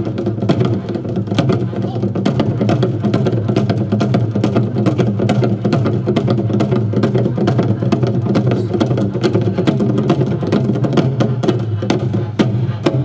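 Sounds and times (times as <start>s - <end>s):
barrel drums beaten with sticks: 0.0s - 13.0s.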